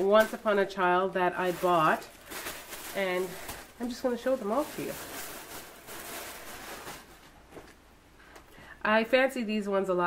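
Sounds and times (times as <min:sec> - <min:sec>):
fabric rustling: 0:00.0 - 0:07.8.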